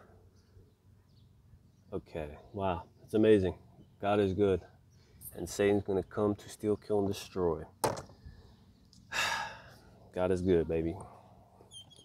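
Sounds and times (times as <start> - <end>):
person sighing: 9.1 - 9.7.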